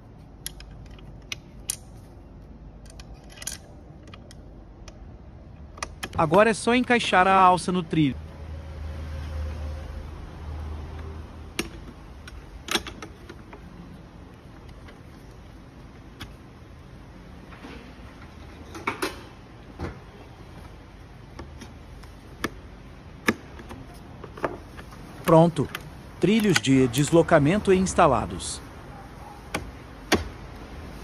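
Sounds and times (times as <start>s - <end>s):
metal seat rail clicks: 2.8s - 4.4s, 11.6s - 13.5s.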